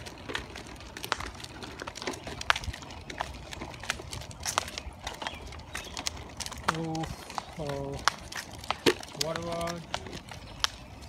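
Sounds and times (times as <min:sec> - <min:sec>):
sandal footsteps on asphalt: 0:00.0 - 0:11.0.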